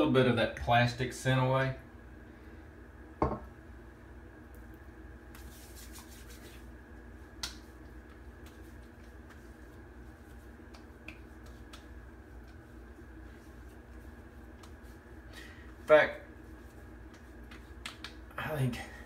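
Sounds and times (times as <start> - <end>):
low room hum: 0.0 - 19.0
glass bottle knock: 3.2 - 3.4
hands rubbing face: 5.3 - 18.3.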